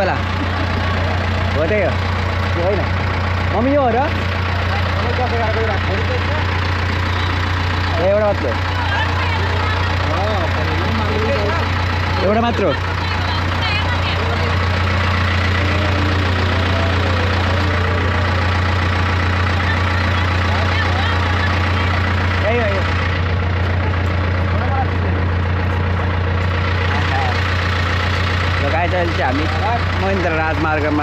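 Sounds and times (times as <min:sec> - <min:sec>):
people talking: 0:00.0 - 0:02.9, 0:03.5 - 0:22.9, 0:23.7 - 0:25.4, 0:26.8 - 0:27.5, 0:28.6 - 0:31.0
bus engine idling: 0:00.0 - 0:31.0.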